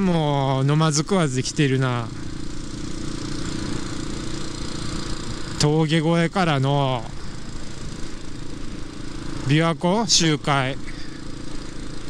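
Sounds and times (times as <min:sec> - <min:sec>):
motorcycle engine cruising: 0:00.0 - 0:12.0
road and wind noise: 0:00.0 - 0:12.0.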